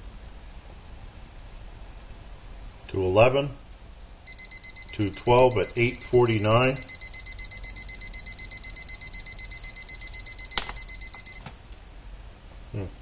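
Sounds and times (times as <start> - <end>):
rapid high alarm beeps: 4.3 - 11.5.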